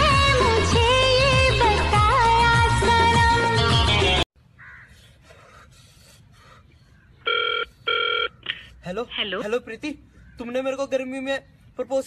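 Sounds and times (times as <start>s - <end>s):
telephone ringing: 7.3s - 8.4s.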